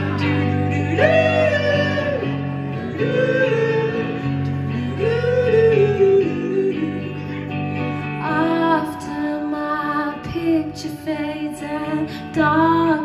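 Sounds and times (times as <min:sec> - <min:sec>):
group singing long held notes: 0:00.0 - 0:07.6
electric guitar: 0:00.0 - 0:13.0.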